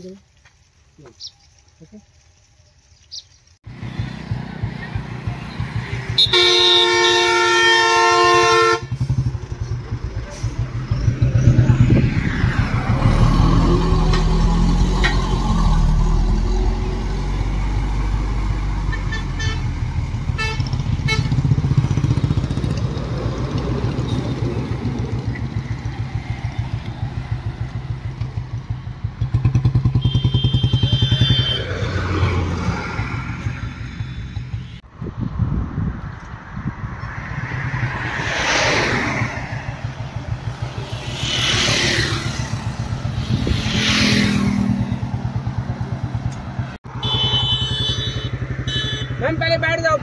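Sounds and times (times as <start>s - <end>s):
traffic passing: 3.1s - 50.0s
motorcycle engine running: 3.7s - 12.6s, 19.5s - 31.8s, 39.7s - 50.0s
vehicle horn: 6.1s - 9.3s, 18.9s - 19.8s, 20.4s - 21.5s, 29.8s - 31.8s, 46.9s - 49.4s.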